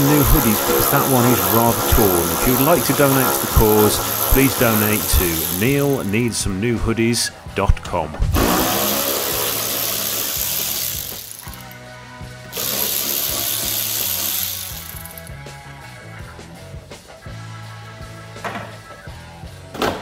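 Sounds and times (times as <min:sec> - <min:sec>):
power tool running: 0:00.0 - 0:06.4, 0:08.3 - 0:11.8, 0:12.5 - 0:15.4
background music with beat: 0:00.0 - 0:19.8.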